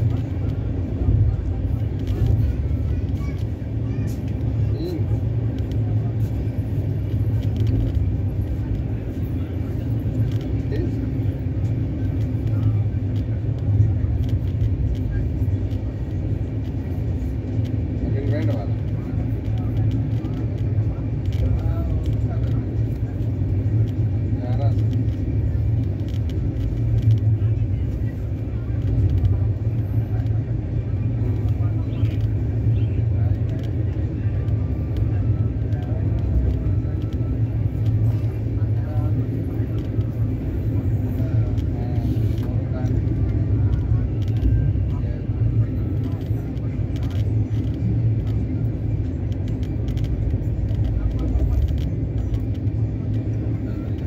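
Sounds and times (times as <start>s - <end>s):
faint background voices: 0.0s - 54.0s
train rumbling inside coach: 0.0s - 54.0s.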